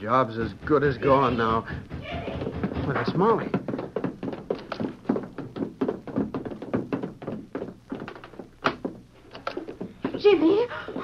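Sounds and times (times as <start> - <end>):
quick footsteps: 0.0 - 11.0.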